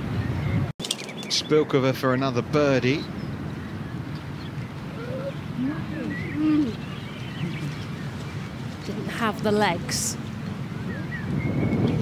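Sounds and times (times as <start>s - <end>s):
outdoor background noise: 0.0s - 12.0s
bird cooing: 4.9s - 8.0s.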